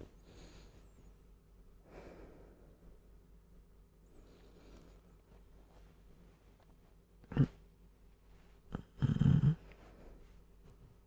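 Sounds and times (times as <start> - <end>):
rattling snore: 8.7 - 9.6.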